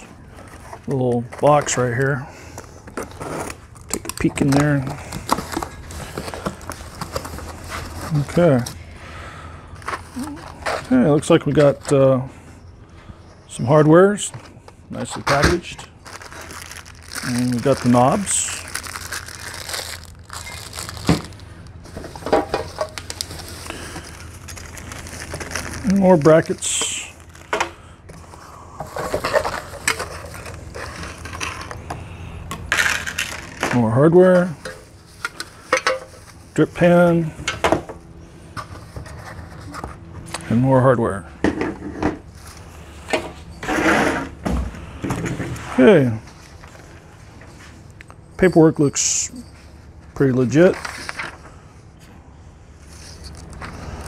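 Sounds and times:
bubble wrap crinkling: 15.9 - 22.2, 22.9 - 27.5.

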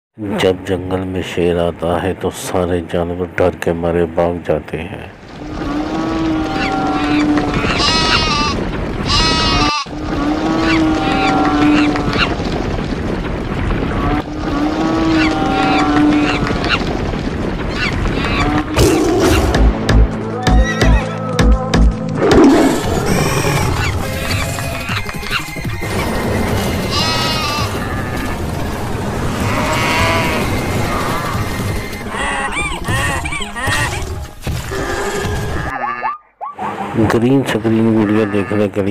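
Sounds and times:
running herd rumble: 5.3 - 19.2, 22.8 - 33.6
animals bleating: 5.6 - 12.3, 14.8 - 16.8, 26.8 - 28.6, 29.2 - 36.3, 37.7 - 38.9.

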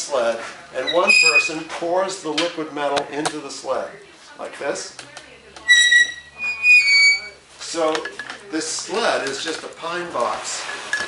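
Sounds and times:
metal pivot squeaking: 0.8 - 1.7, 5.6 - 7.4.

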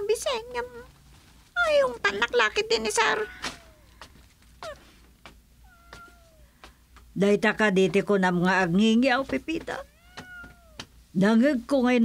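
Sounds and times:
cat meowing: 2.8 - 4.0, 4.6 - 4.9, 5.6 - 6.7, 9.8 - 10.9.

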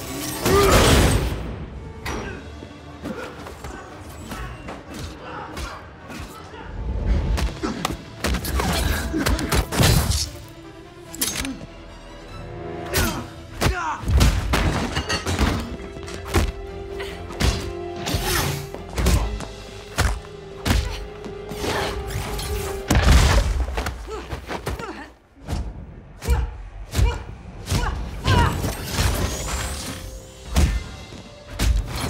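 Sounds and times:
tense score music: 0.0 - 32.0.

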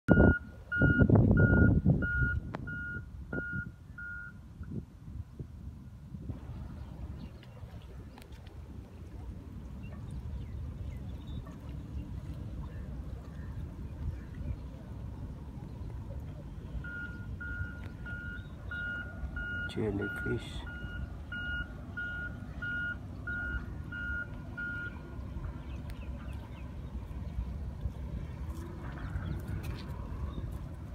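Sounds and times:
reversing alarm beeping: 0.1 - 4.4, 16.8 - 25.0
steady low rumble: 0.1 - 30.9.

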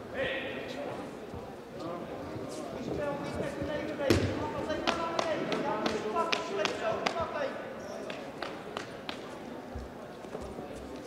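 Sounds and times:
many voices talking: 0.0 - 11.0.

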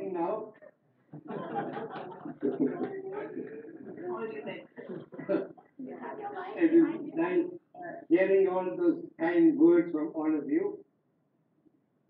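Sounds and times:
man speaking over video call: 0.0 - 0.6, 6.5 - 10.9.

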